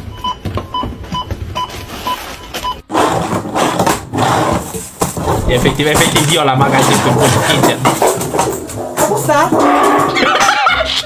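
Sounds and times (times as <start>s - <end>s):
loud rushing noise: 5.2s - 6.5s.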